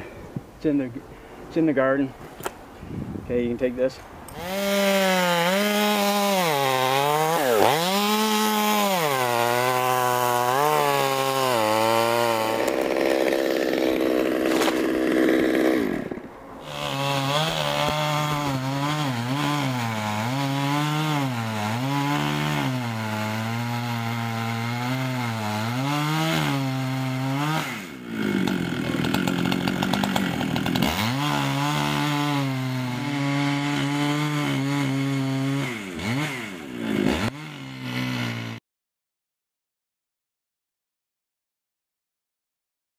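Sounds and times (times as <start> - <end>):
chainsaw cutting wood: 4.3 - 38.6.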